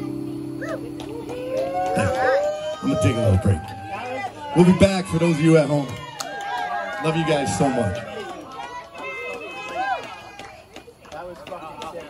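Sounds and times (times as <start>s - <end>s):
people calling out: 0.0s - 10.7s
person whooping: 0.6s - 8.4s.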